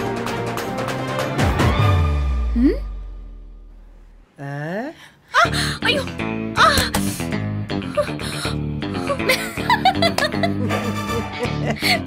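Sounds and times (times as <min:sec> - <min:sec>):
woman exclaiming: 0:04.4 - 0:06.9
breathy gasps: 0:06.6 - 0:09.2.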